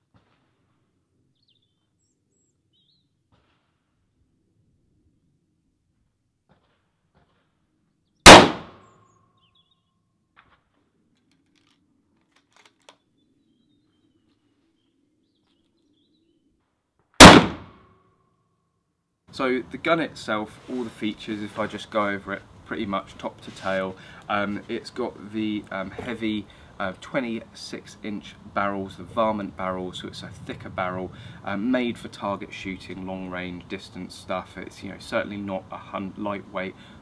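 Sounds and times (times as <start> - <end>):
loud rifle shots: 8.2 - 8.8, 17.2 - 17.8.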